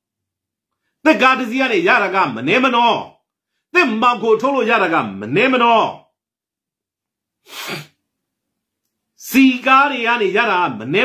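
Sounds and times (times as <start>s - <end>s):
man breathy vocal burst: 7.4s - 8.0s.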